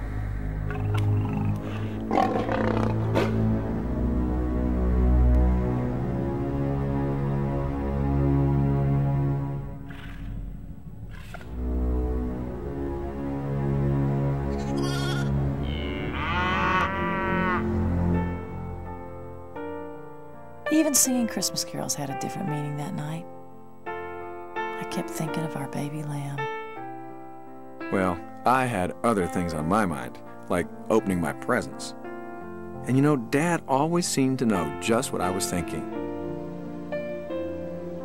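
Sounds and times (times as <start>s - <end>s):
low film-score music: 0.0s - 38.0s
lion growling: 0.4s - 3.5s
lamb bleating: 14.5s - 17.0s.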